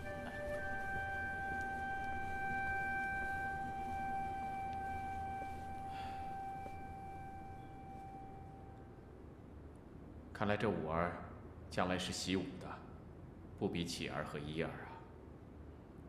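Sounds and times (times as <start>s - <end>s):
long held instrumental note: 0.0s - 9.0s.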